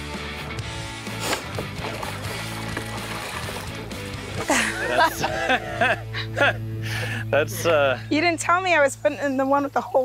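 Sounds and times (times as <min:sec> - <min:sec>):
background music with held tones: 0:00.0 - 0:10.0
person laughing: 0:04.4 - 0:07.8.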